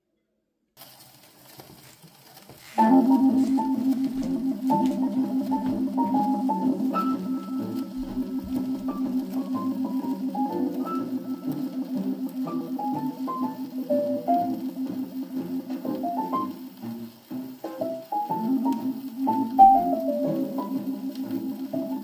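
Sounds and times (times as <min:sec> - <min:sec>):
jazz band on a phonograph: 0:00.8 - 0:22.0
record needle crackle: 0:00.8 - 0:22.0.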